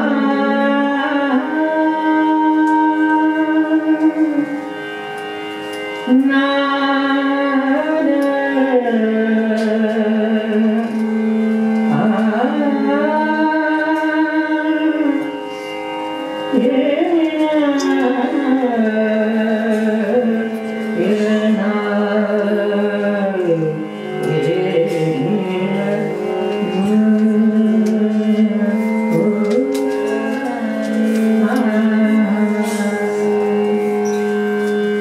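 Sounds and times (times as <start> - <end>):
woman singing long held notes: 0.0 - 4.6, 16.5 - 34.0
harmonium sustaining: 0.0 - 35.0.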